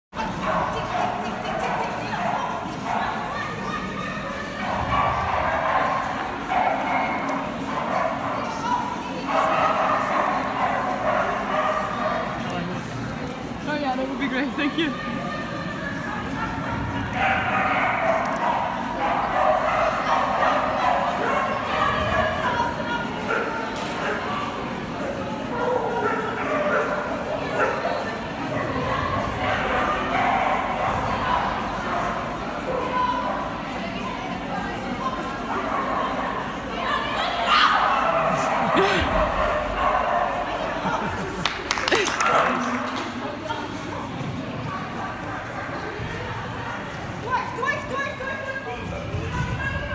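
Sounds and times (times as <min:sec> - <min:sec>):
human voices: 0:34.9 - 0:47.0.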